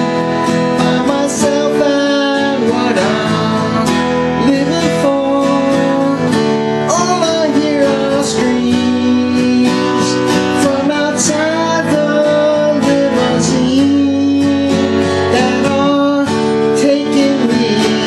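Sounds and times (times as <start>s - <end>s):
acoustic guitar strumming: 0.0s - 18.0s
man singing: 0.0s - 18.0s.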